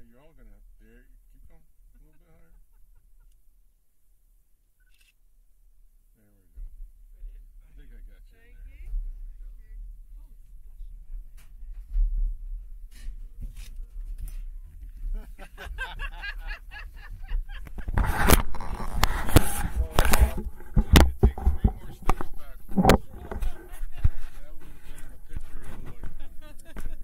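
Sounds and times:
voices: 0:13.6 - 0:27.0
camera handling knocks and scrapes: 0:17.6 - 0:27.0.

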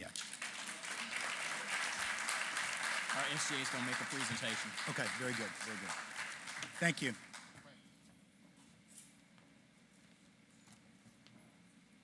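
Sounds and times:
audience applause: 0:00.0 - 0:07.5.

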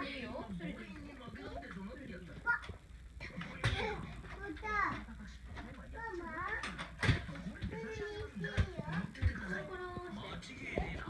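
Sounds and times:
high child's voice: 0:04.4 - 0:05.0.

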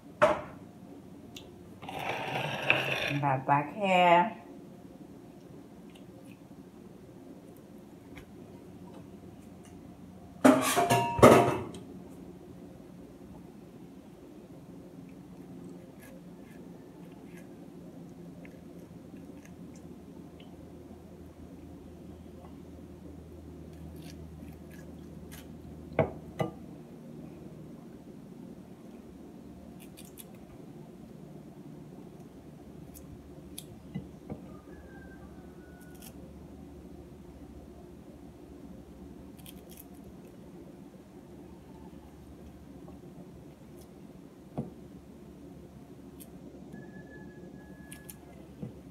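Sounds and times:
steady low hum: 0:00.0 - 0:48.9
knife cutting pineapple: 0:15.8 - 0:17.6.

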